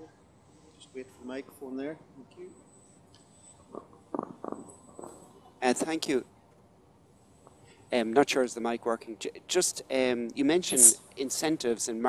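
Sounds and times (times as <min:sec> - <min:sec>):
microphone handling bumps: 0:03.7 - 0:06.2.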